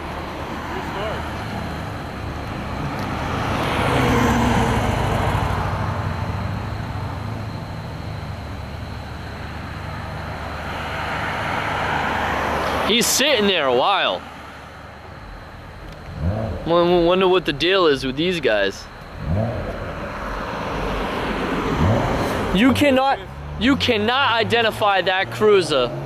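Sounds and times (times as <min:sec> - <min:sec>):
low engine hum: 0:00.0 - 0:12.9, 0:14.2 - 0:26.0
vehicles passing: 0:00.0 - 0:26.0.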